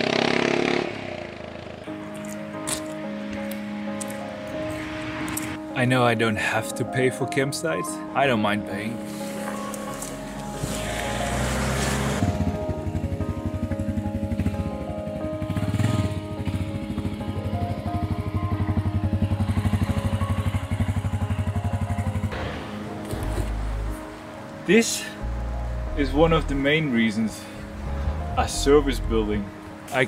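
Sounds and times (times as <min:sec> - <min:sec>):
motorcycle engine running: 0:00.0 - 0:02.0, 0:10.4 - 0:22.4
background music: 0:00.0 - 0:30.0.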